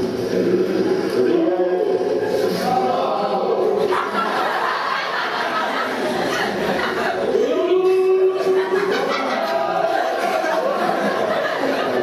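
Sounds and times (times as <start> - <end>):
audience chatter: 0.0 - 12.0.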